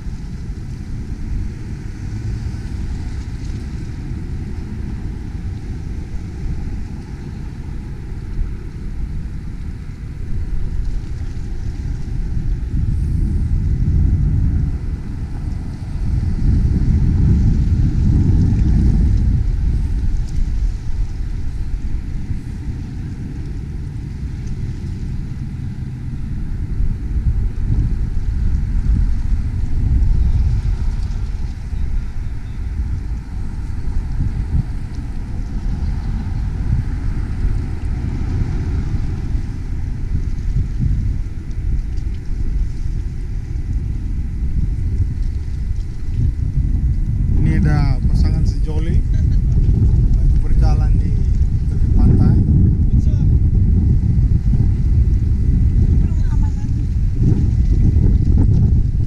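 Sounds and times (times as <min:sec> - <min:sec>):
wind buffeting microphone: 0:00.0 - 0:59.0
people talking: 0:47.4 - 0:49.4, 0:50.2 - 0:53.3, 0:56.0 - 0:56.8.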